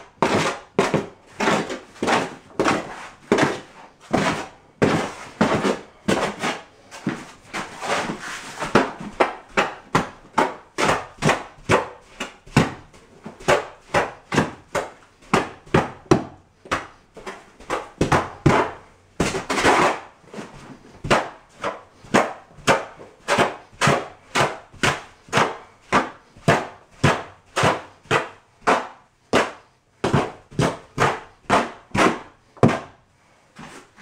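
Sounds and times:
hoe scraping through mortar: 0:00.1 - 0:14.6.

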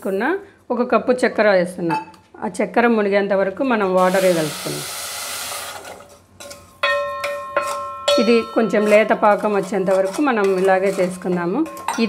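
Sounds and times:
metal object struck ringing: 0:06.8 - 0:09.3.

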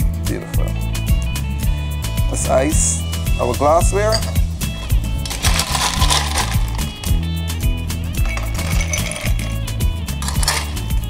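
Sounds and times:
background music: 0:00.0 - 0:11.0
ice cubes clinking into glasses: 0:04.1 - 0:07.2, 0:08.1 - 0:11.0
metal scoop scooping ice: 0:04.1 - 0:07.2, 0:08.2 - 0:09.6, 0:10.2 - 0:11.0.

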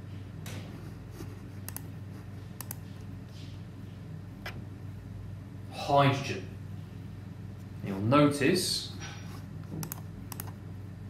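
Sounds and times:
low steady hum: 0:00.0 - 0:11.0
computer mouse clicks: 0:01.6 - 0:01.9, 0:02.6 - 0:02.9, 0:09.7 - 0:10.6.

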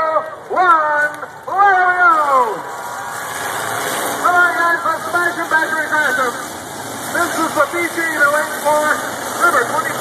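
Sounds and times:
announcer calling over loudspeaker: 0:00.0 - 0:02.7, 0:04.2 - 0:06.4, 0:07.2 - 0:10.0
car engines din: 0:00.0 - 0:10.0
crowd noise: 0:00.0 - 0:10.0.

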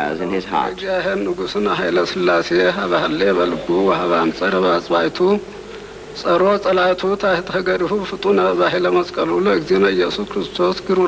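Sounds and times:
man chanting a prayer: 0:00.0 - 0:05.5, 0:06.2 - 0:11.0
faint buzzing hum: 0:00.0 - 0:11.0.

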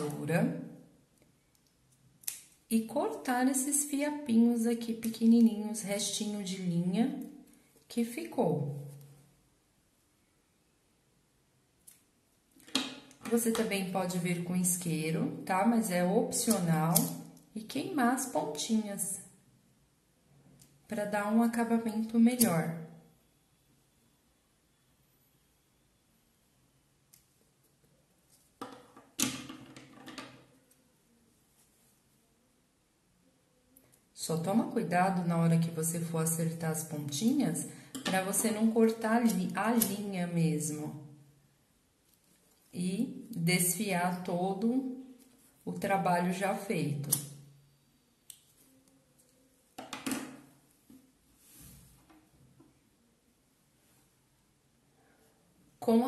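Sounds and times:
fabric rustling: 0:31.3 - 0:32.2, 0:50.4 - 0:52.1.

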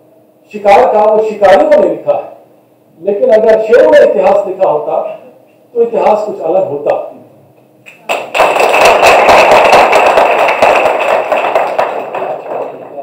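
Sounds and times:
audience applauding: 0:08.0 - 0:13.0.

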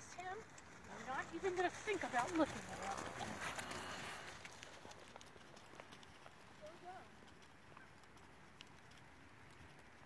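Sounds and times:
horse hooves trotting on sand: 0:00.0 - 0:10.0.

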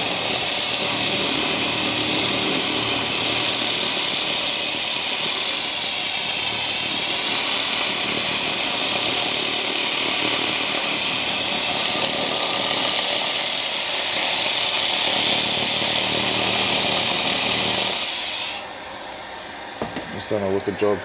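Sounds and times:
laser cleaner high hiss: 0:00.0 - 0:18.7.

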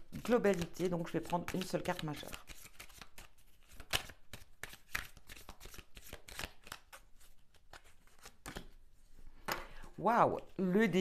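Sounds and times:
cards being shuffled: 0:00.0 - 0:08.8.

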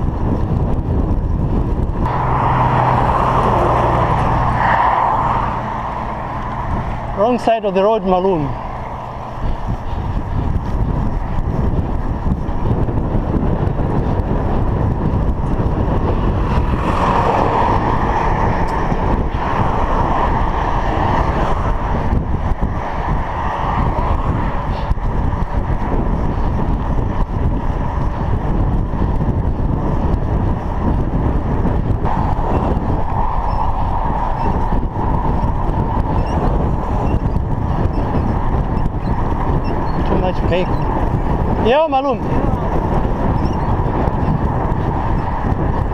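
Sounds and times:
tyre and road noise: 0:00.0 - 0:45.9
wind buffeting microphone: 0:00.0 - 0:45.9.

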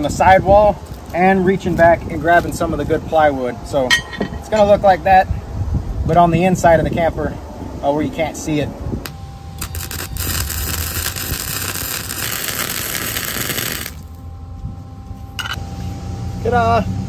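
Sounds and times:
arc welding crackle: 0:00.0 - 0:02.8, 0:09.0 - 0:14.2.

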